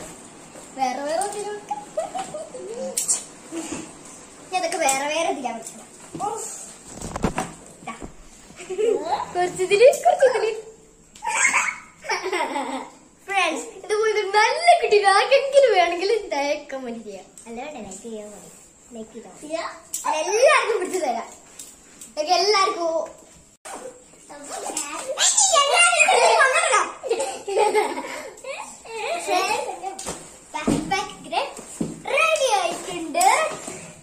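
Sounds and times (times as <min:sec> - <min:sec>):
child's voice: 0:13.3 - 0:21.4, 0:24.3 - 0:27.0, 0:30.6 - 0:33.8
young girl talking: 0:13.3 - 0:21.4, 0:24.3 - 0:27.0, 0:28.9 - 0:33.6.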